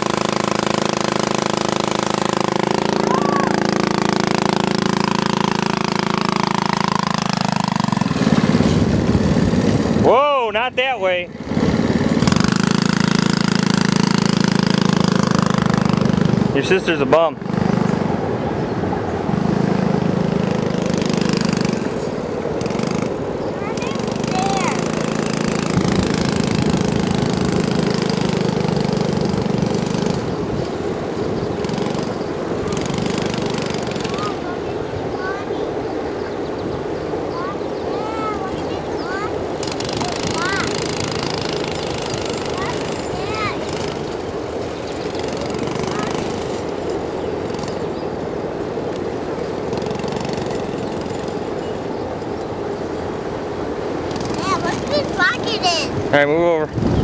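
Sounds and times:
small four-wheeler engine running: 0.0 - 57.0.

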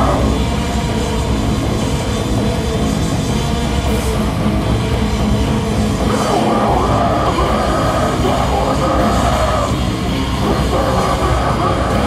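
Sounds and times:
punk band playing live: 0.0 - 12.0
person shouting vocals: 6.1 - 9.8.

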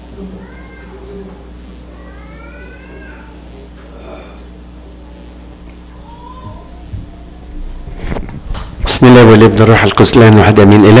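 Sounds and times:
low electrical hum: 0.0 - 11.0
child's high-pitched voice: 2.0 - 3.4, 5.0 - 7.6.

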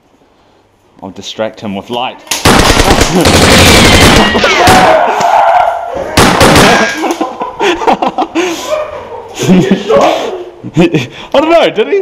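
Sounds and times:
airsoft guns firing in bursts: 2.3 - 5.0, 6.2 - 6.9.

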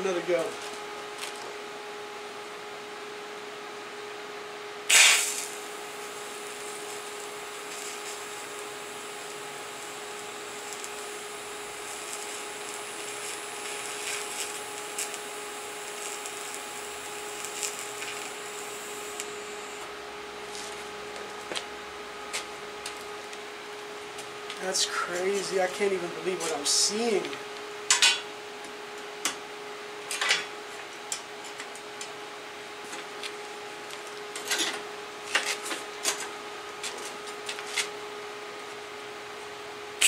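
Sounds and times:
steady hum: 0.0 - 40.0
welding arc hissing and crackling: 4.8 - 23.4, 24.2 - 27.4
welding arc striking: 4.9 - 21.7.

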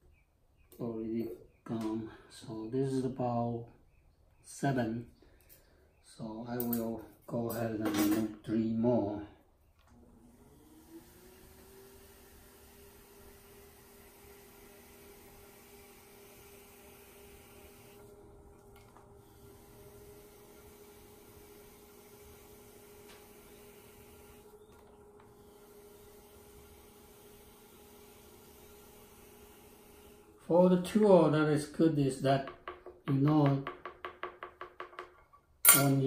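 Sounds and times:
electric pottery wheel motor hum: 9.8 - 32.8.

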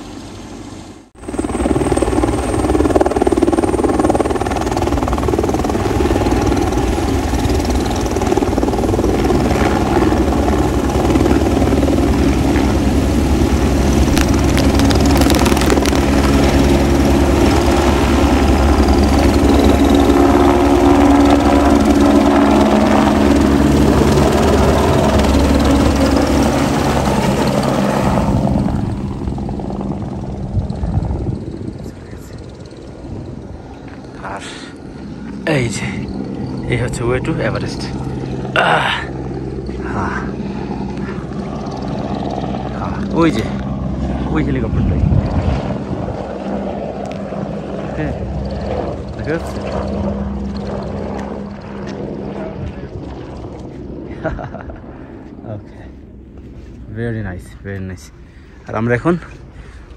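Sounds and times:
helicopter flying close by: 0.0 - 59.9.

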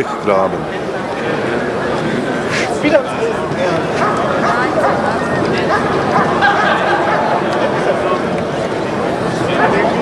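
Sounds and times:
chatter of onlookers: 0.0 - 10.0
dog barking: 4.0 - 7.2.

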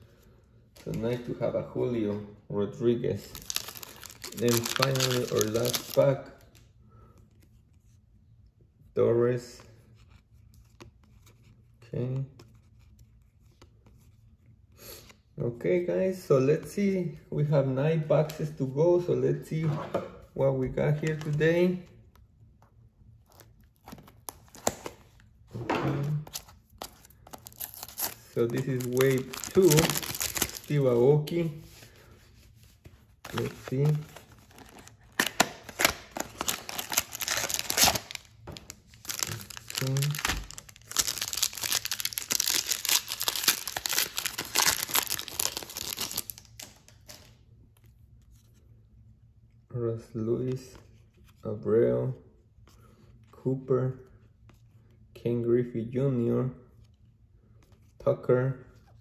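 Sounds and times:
plastic wrapping crinkling: 3.2 - 6.6, 26.0 - 31.0, 33.2 - 47.3.

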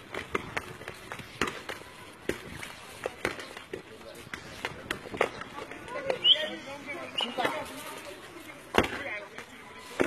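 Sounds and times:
voices in background: 0.6 - 10.0.

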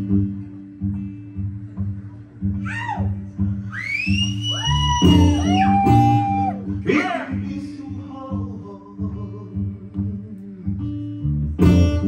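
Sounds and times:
strummed acoustic guitar: 5.1 - 12.0.

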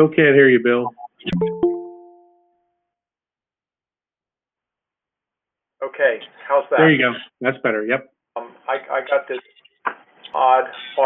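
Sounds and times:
notification chime: 0.9 - 2.5.

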